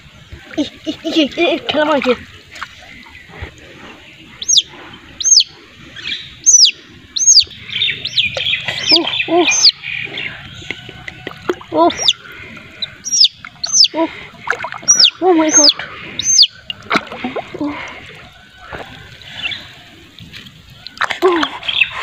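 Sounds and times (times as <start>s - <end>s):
bird chirping: 4.2s - 11.2s, 11.9s - 14.0s, 14.8s - 16.7s
lower voice-like bird calls: 4.3s - 10.9s, 11.8s - 14.1s, 14.9s - 16.6s.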